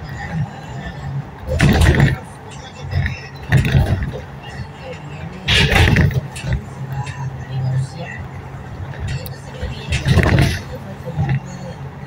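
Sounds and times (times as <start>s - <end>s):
road vehicle drone from inside: 0.0s - 12.0s.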